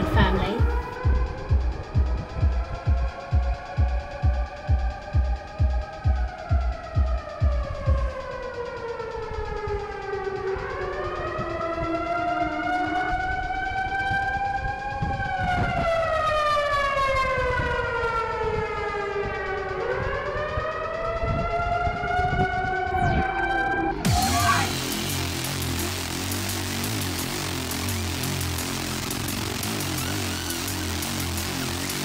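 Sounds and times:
heavy bass thumps: 0.0 - 8.6, 24.0 - 32.0
wailing siren: 0.0 - 32.0.

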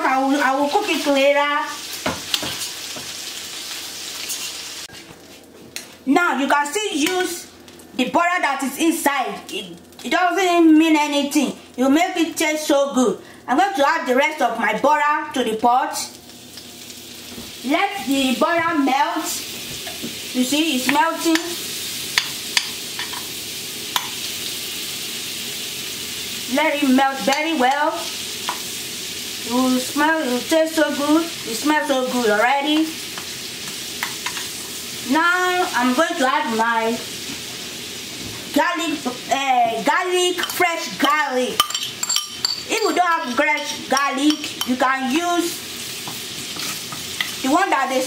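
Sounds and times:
shrimp sizzling in butter: 0.0 - 5.1, 16.0 - 48.0
metal spoon clinking on pan: 40.4 - 40.6, 41.6 - 43.0, 43.6 - 44.8.

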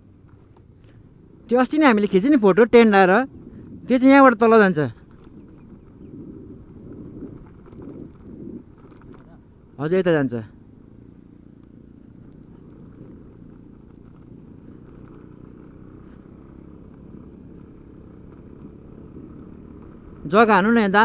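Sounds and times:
motor scooter engine running: 0.0 - 21.0
tyres rolling over gravel: 4.6 - 10.0.

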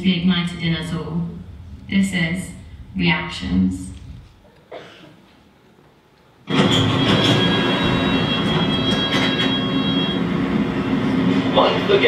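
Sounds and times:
high whine: 0.0 - 4.5, 6.5 - 12.0
underground train running noise: 0.0 - 5.0, 6.4 - 12.0.

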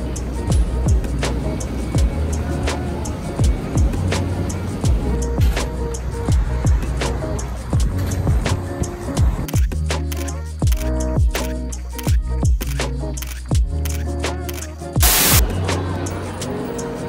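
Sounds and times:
lo-fi hip-hop music: 0.0 - 17.0.

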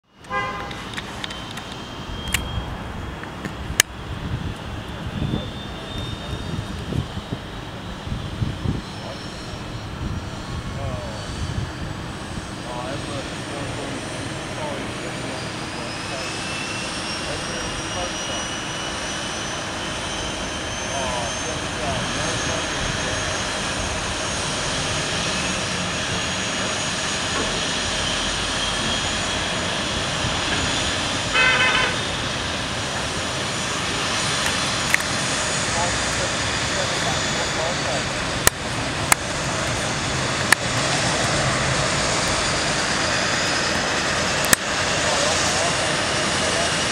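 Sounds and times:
turbine engine whine rising: 0.0 - 46.9
steady rushing noise: 0.5 - 46.9.

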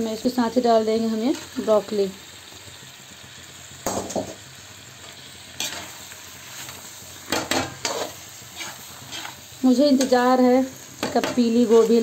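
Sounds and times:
frying sizzle: 0.0 - 12.0
metal spatula scraping pan: 5.6 - 10.2.

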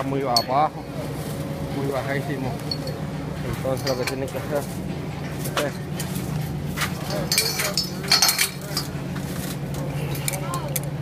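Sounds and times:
steady low hum: 0.0 - 11.0
chain links clinking: 2.6 - 3.0, 3.7 - 4.2, 7.0 - 9.0.

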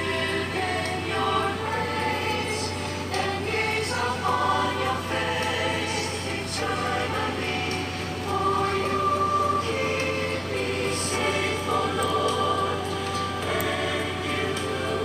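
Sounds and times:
choir singing held chords: 0.0 - 15.0
low hum: 0.0 - 15.0.

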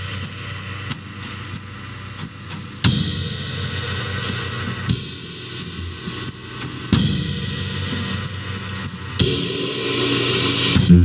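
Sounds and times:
drum kit with cymbal accents: 0.0 - 11.0
sustained cymbal wash: 0.0 - 11.0.

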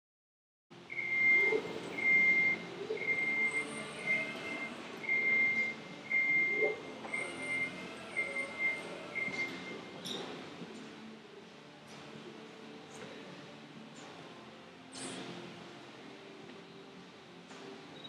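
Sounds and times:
faint music: 0.7 - 18.0
high steady beeps: 0.9 - 9.9.

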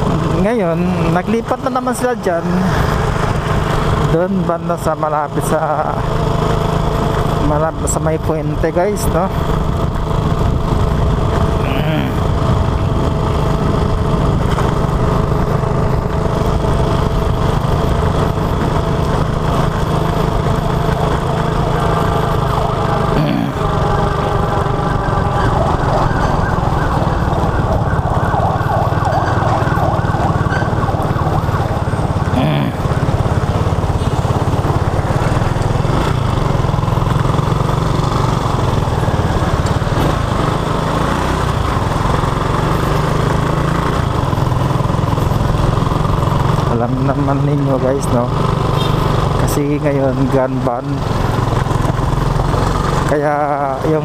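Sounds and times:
small motorcycle engine running: 0.0 - 54.0.

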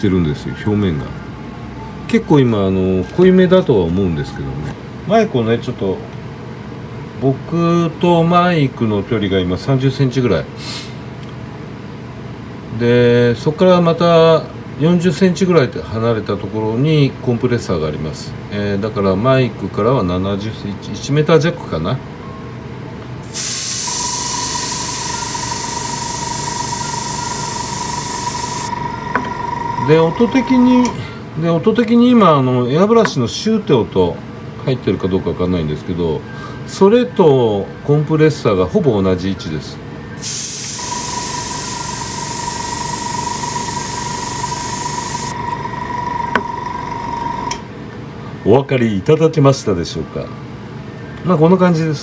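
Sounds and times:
compressor high whine: 23.2 - 31.3, 40.2 - 47.9
airbrush spraying hiss: 23.3 - 28.8, 40.2 - 45.4.

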